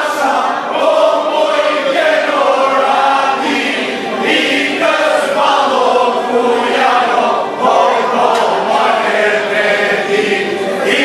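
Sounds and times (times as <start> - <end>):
men singing together: 0.0 - 11.0.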